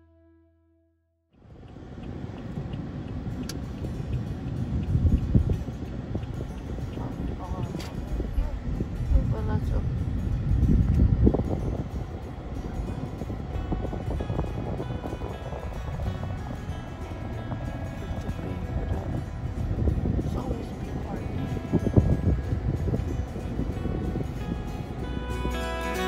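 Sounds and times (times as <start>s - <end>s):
car road noise rumble: 1.4s - 26.0s
music playing: 3.3s - 26.0s.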